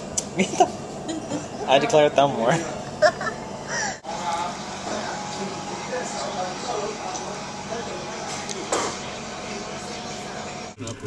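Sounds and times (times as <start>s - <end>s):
restaurant murmur with chatter: 0.0s - 11.0s.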